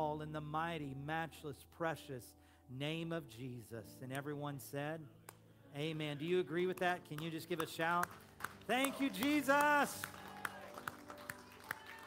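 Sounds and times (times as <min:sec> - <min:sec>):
people clapping: 0:06.7 - 0:12.0.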